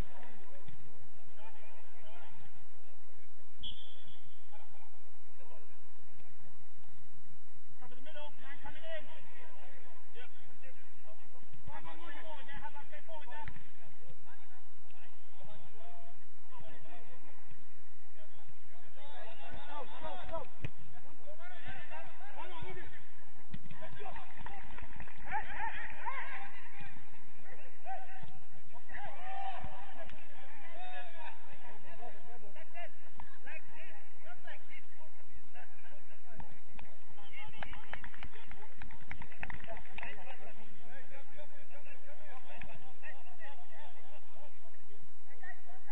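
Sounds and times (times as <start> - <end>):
players shouting: 23.8 - 33.7.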